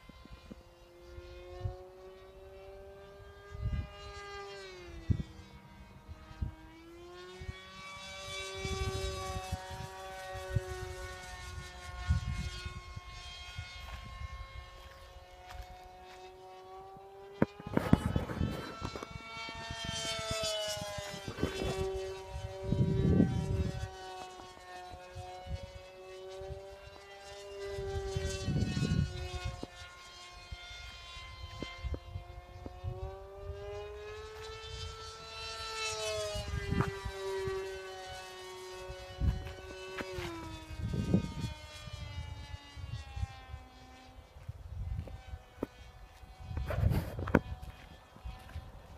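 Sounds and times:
model plane propeller whine: 0:00.0 - 0:48.9
wind rumbling on microphone: 0:03.1 - 0:06.7, 0:07.4 - 0:15.9, 0:17.4 - 0:24.0, 0:27.6 - 0:35.0, 0:35.9 - 0:38.0, 0:38.8 - 0:48.9.

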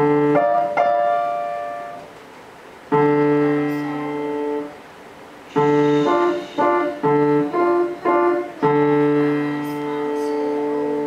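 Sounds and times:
piano chord ringing: 0:00.0 - 0:02.1, 0:02.9 - 0:04.8, 0:05.5 - 0:11.0.

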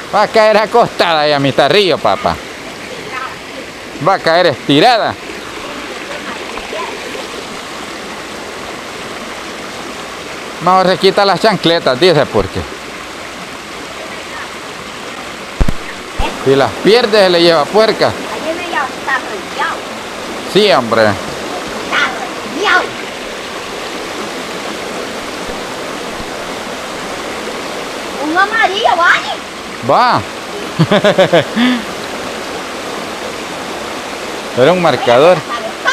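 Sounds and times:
river flowing over rocks: 0:00.0 - 0:35.9.

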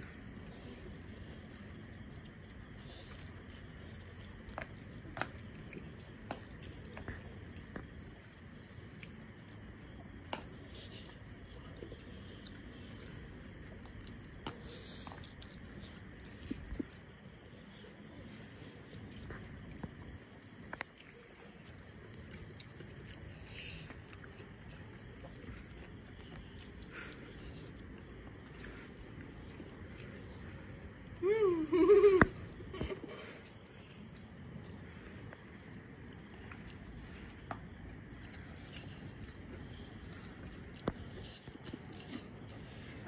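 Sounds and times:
chewing and slurping: 0:00.0 - 0:31.2, 0:32.5 - 0:43.0.

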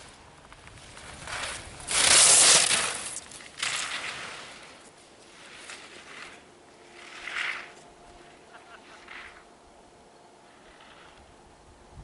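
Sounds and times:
skis scraping across hard snow: 0:00.0 - 0:09.5, 0:10.5 - 0:11.3.

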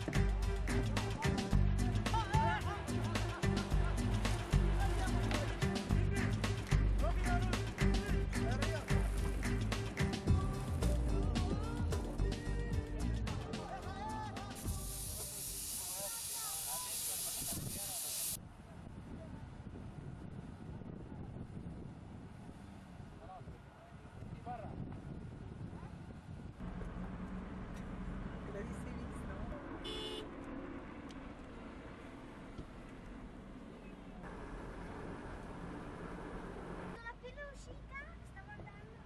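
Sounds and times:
engine rumbling: 0:00.0 - 0:15.1, 0:18.4 - 0:39.0
loud hiss: 0:14.5 - 0:18.4.

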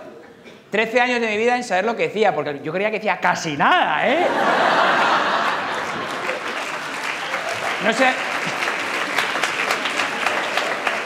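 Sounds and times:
audience applauding: 0:04.5 - 0:11.0.

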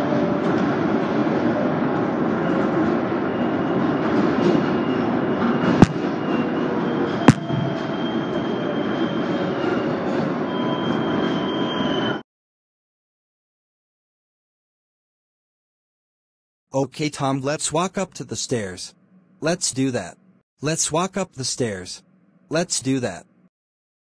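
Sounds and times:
high squeal: 0:03.2 - 0:12.2.

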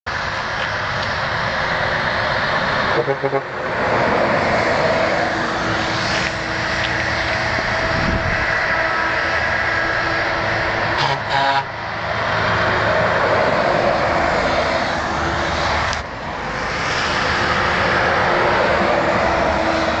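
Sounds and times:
trucks driving past: 0:00.1 - 0:20.0.

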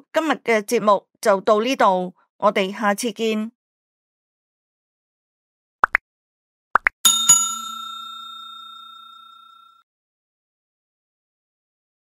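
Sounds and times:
notification bell chime: 0:07.1 - 0:09.8.

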